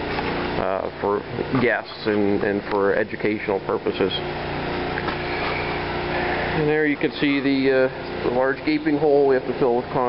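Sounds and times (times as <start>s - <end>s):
generator engine humming: 0.0s - 10.0s.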